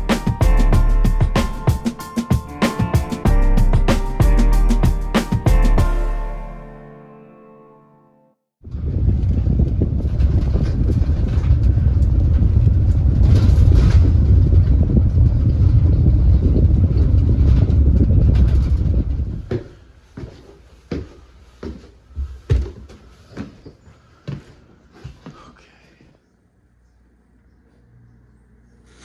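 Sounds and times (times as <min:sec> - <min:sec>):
vehicle driving low rumble: 0:08.7 - 0:19.5.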